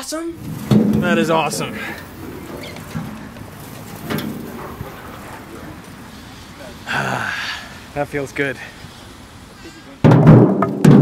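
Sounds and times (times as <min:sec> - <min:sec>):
wind on microphone: 0:00.4 - 0:08.0.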